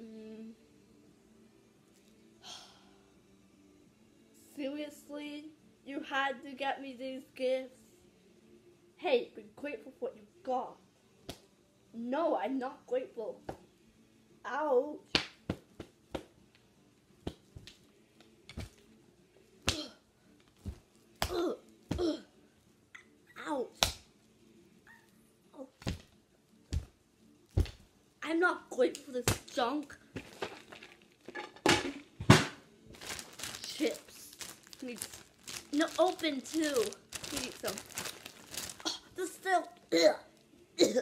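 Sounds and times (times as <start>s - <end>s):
hand puppets smacking together: 15.1s - 16.3s, 23.8s - 24.1s
chip bag crinkling: 30.2s - 31.2s, 33.0s - 39.1s.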